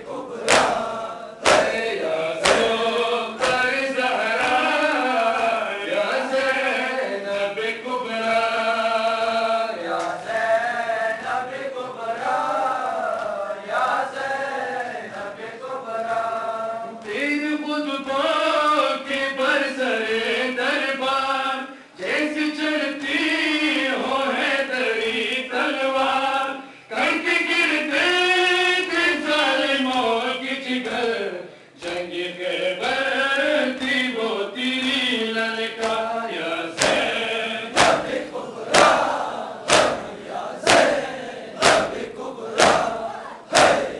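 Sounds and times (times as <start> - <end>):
rhythmic chest-beating: 0.0 - 6.8, 27.1 - 43.9
men chanting a lament: 0.0 - 43.9.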